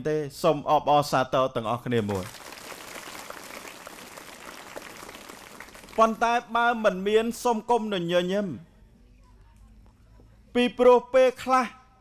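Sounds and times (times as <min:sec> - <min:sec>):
audience applauding: 0:02.1 - 0:06.3.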